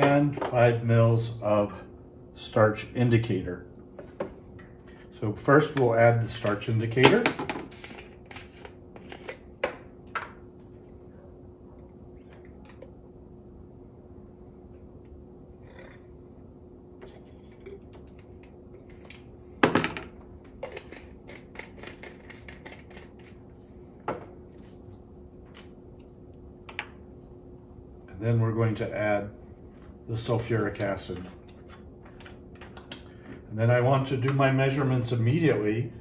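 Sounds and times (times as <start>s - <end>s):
faint steady hum: 0.0s - 36.0s.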